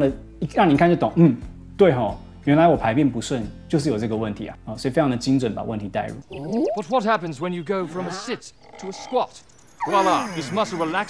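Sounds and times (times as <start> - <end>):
person speaking: 6.2 - 11.0.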